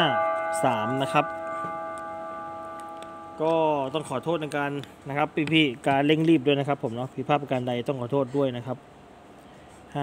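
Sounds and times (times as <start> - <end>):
bell-like chime chord: 0.0 - 4.5.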